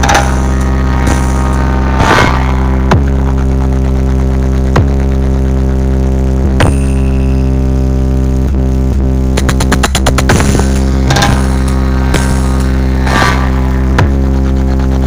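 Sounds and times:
sharp hits: 0.0s - 4.3s, 9.4s - 14.2s
loud electronic dance music: 0.0s - 5.7s, 9.2s - 15.0s.

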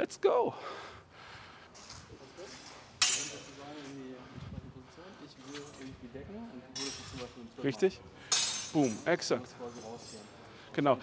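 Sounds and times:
swords clashing: 3.0s - 3.6s, 8.3s - 9.2s.

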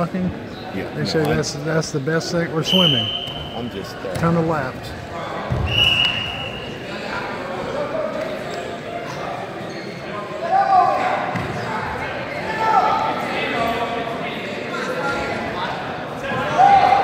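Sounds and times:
echoing indistinct voices: 0.0s - 17.0s.

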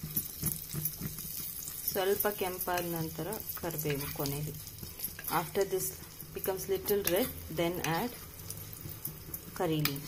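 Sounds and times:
oil sizzling: 0.0s - 10.0s
spoon stirring in iron pan: 0.0s - 10.0s.

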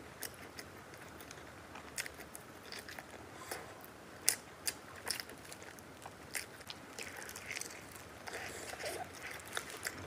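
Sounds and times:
chewing crisp flatbread: 0.0s - 10.0s.

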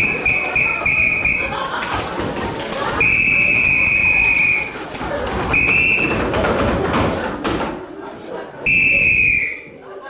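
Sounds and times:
police whistle blasts: 0.0s - 1.5s, 8.7s - 9.7s.

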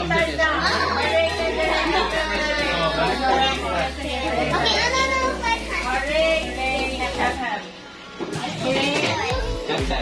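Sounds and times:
adults and children talking: 0.0s - 10.0s.

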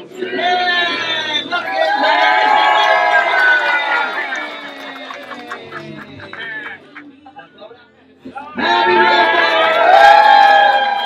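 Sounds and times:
crowd cheering: 1.4s - 6.8s, 8.6s - 11.0s
hand clapping: 3.9s - 7.1s.

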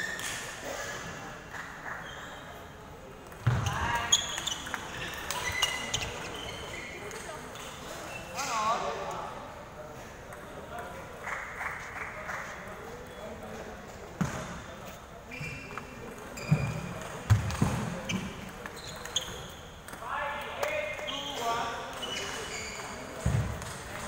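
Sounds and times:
voices chattering in hall: 0.0s - 24.0s.

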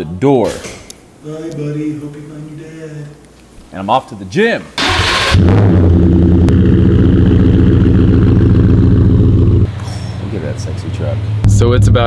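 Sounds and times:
truck engine starting and running: 4.8s - 12.0s.

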